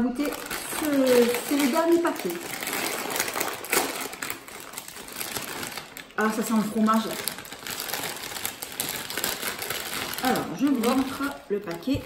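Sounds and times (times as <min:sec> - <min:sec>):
crisp packet crinkling open: 0:00.0 - 0:12.0.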